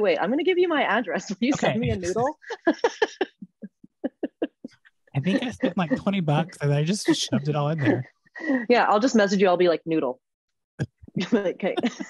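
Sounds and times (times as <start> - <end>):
woman laughing: 1.4 - 8.8, 11.1 - 12.0.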